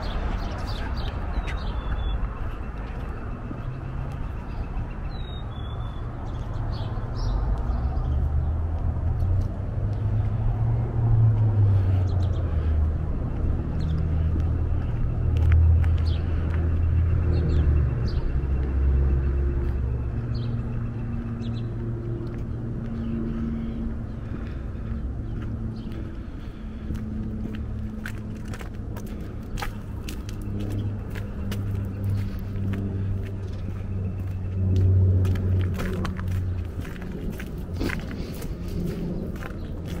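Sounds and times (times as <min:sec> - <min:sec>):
road traffic rumble: 0:00.0 - 0:40.0
steady engine hum: 0:00.0 - 0:40.0.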